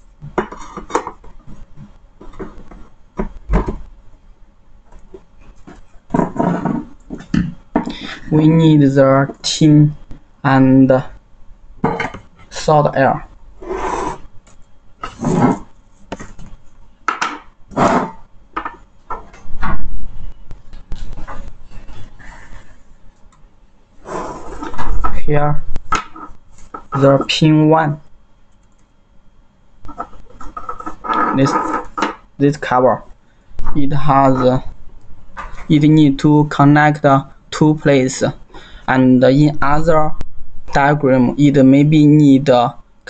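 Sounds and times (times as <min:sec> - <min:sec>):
scraping and knocking on workbench: 0:06.1 - 0:07.9.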